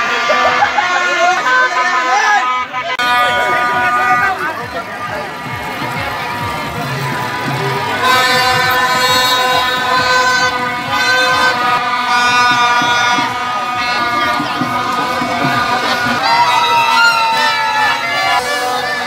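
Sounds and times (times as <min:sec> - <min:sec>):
crowd voices: 0:00.0 - 0:19.0
loud blaring horn: 0:00.0 - 0:19.0.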